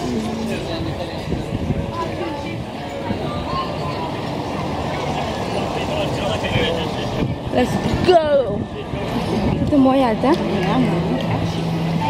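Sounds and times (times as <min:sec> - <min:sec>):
faint indistinct voices: 0:00.0 - 0:12.0
outdoor street noise: 0:00.0 - 0:12.0.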